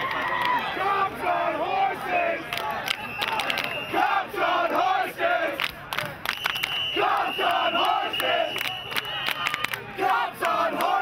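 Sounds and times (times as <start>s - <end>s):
crowd shouting in unison: 0.0s - 5.6s, 7.0s - 8.6s, 9.4s - 11.0s
sharp claps or clicks: 2.5s - 3.8s, 5.6s - 9.8s.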